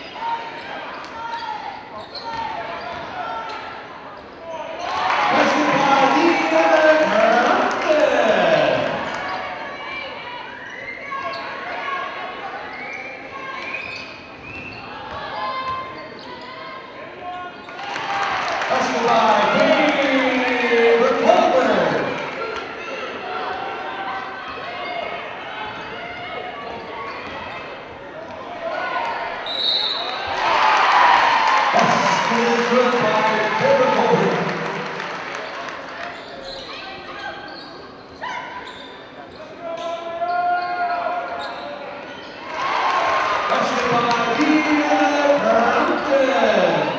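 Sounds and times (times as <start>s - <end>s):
crowd noise: 0.0s - 46.9s
voices of players and spectators: 0.0s - 46.9s.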